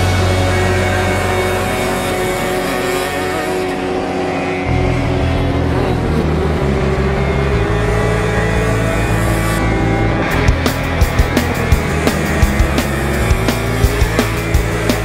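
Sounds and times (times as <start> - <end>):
kart engines racing: 0.0 - 15.0
loud background music: 0.0 - 15.0.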